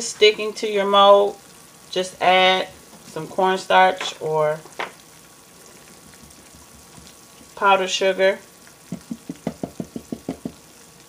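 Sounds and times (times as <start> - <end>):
silicone mold tapping on mat: 8.9 - 10.6.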